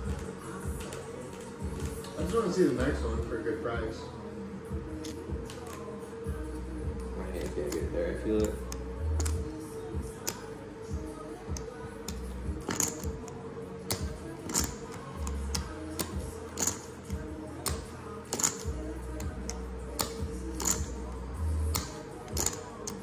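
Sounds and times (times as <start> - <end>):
background music with bass line: 0.0 - 23.0.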